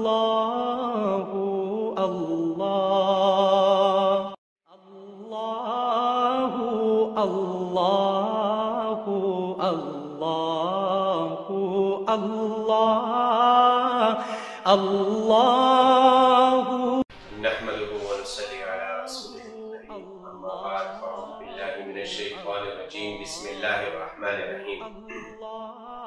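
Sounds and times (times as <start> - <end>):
man chanting devotional melody: 17.3 - 25.6.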